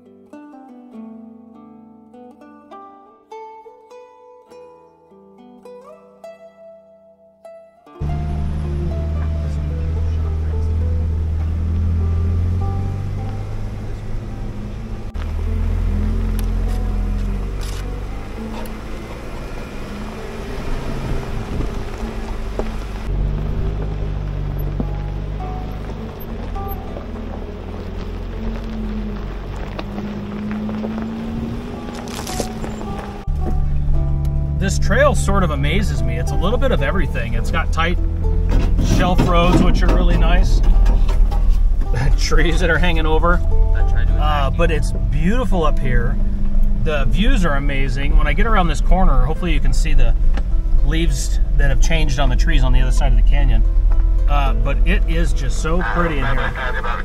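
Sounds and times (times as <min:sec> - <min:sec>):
plucked-string background music: 0:00.0 - 0:57.0
vehicle engine rumble: 0:08.0 - 0:57.0
wind buffeting microphone: 0:19.2 - 0:33.6
gravel knocks: 0:20.8 - 0:34.0.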